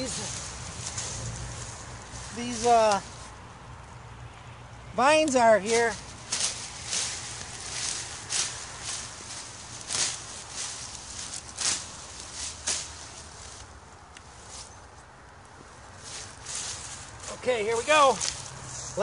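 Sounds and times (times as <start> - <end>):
leaves rustling and tearing: 0.0 - 3.4, 5.2 - 14.9, 15.9 - 19.0.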